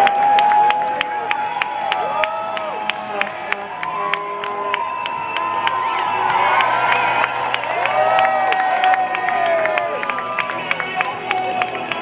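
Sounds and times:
crowd cheering and calling out: 0:00.0 - 0:12.0.

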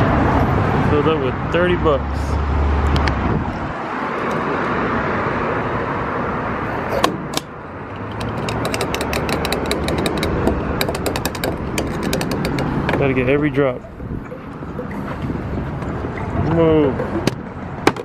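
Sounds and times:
pump nozzle clicking: 0:07.0 - 0:13.1.

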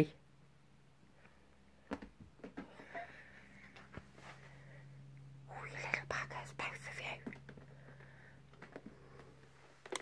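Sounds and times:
person whispering: 0:05.4 - 0:07.4.

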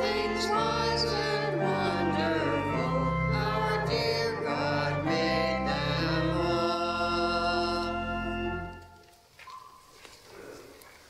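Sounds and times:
vocal group singing a hymn: 0:00.0 - 0:08.8
pipe organ chords: 0:00.0 - 0:09.0.

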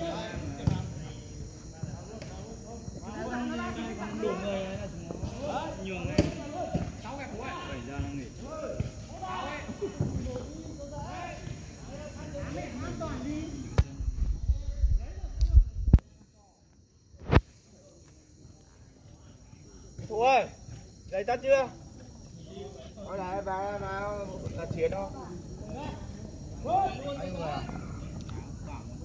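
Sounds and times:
insects chirring: 0:00.0 - 0:29.0.

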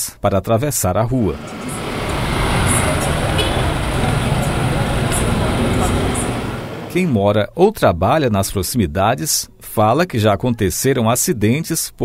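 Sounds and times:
small car passing: 0:01.2 - 0:07.0
low engine rumble: 0:01.4 - 0:07.0
motorcycle passing: 0:01.4 - 0:07.0.

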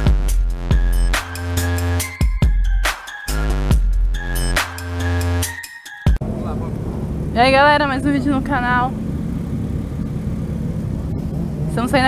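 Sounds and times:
motorcycle engines idling: 0:06.2 - 0:12.0.

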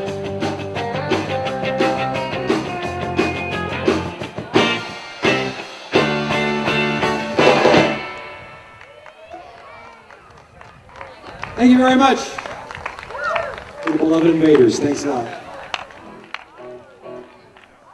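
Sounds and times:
rock band playing: 0:00.0 - 0:08.9.

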